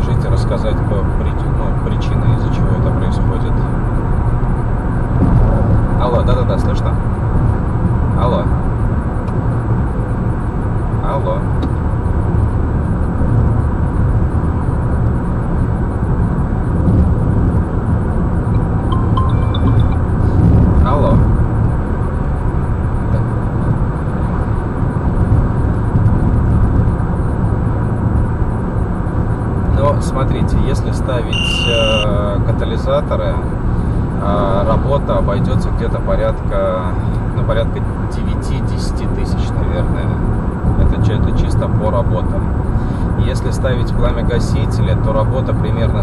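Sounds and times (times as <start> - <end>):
car road rumble: 0.0 - 46.0.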